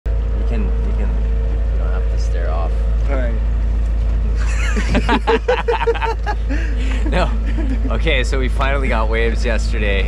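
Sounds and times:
boat motor droning: 0.1s - 10.0s
voices: 0.3s - 10.0s.

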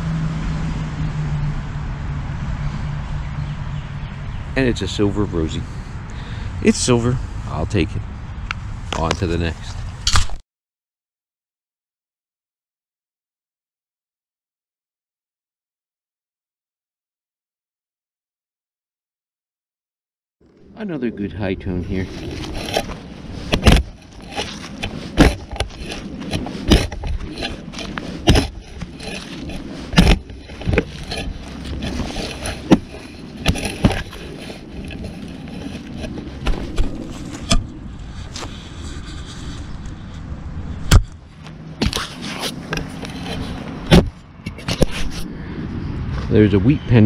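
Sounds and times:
scraping and crunching of soil: 8.9s - 10.4s, 20.5s - 45.3s
shovel blade jabbing soil: 22.0s - 37.7s.

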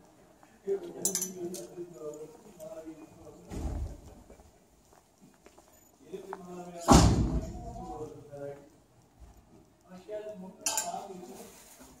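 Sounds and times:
hanger clinking on metal rail: 1.0s - 2.2s, 10.6s - 11.0s.

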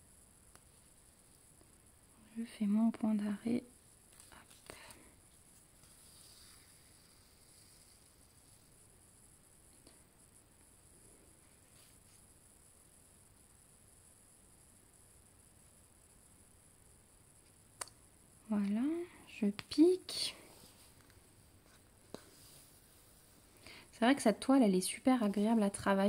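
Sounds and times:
thread rustling through fabric: 2.6s - 12.4s.

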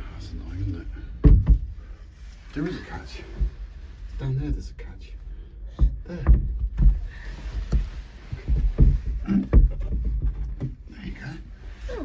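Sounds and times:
rumbling handling noise: 0.0s - 12.0s
wooden shutter knocks and bumps: 1.1s - 1.9s, 5.7s - 11.1s.

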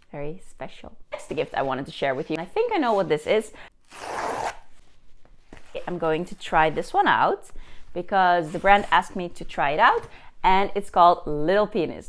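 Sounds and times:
paper envelope ripping: 3.9s - 4.7s.

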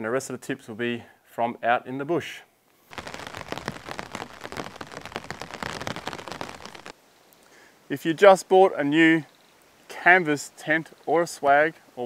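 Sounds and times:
rain pattering: 2.9s - 7.0s.

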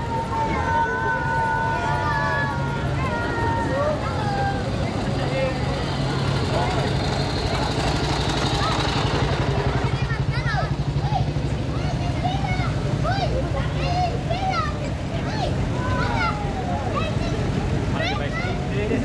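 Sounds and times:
crowd chatter: 0.0s - 19.0s
military vehicle engines: 0.0s - 19.0s.

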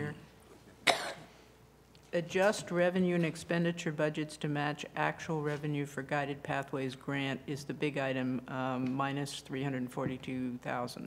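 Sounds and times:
short cough: 0.8s - 1.4s.

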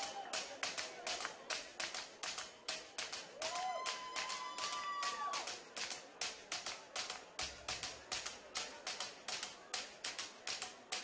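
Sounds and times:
high cheer: 0.0s - 0.6s, 3.4s - 5.6s
audience clapping: 0.0s - 11.0s.

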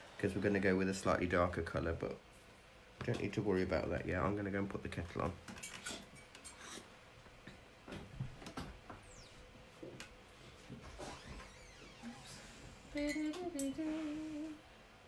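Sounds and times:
person humming: 12.8s - 14.6s.

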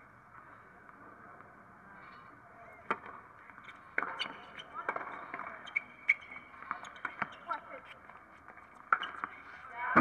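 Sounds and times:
tennis ball bouncing: 6.6s - 7.5s.

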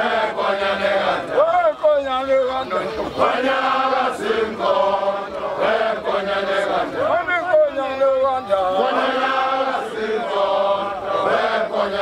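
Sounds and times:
men chanting together: 0.0s - 1.4s, 3.2s - 7.2s, 8.4s - 12.0s.

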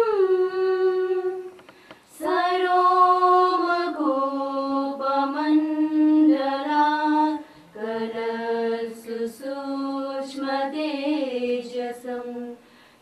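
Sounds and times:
women singing a slow prayer: 0.0s - 12.8s.

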